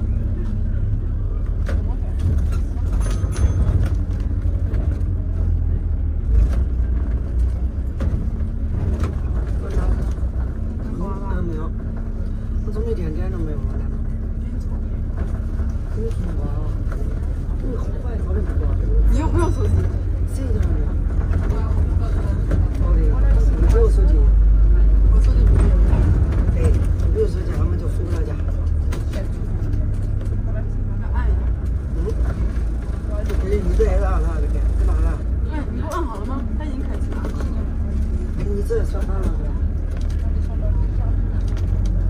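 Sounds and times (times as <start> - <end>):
bus engine and road rumble: 0.0 - 42.0
passengers chatting: 0.0 - 42.0.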